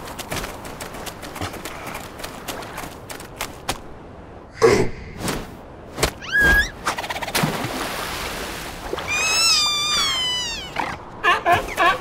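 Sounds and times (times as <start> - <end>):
cartoon seal squeaks: 6.2 - 6.7.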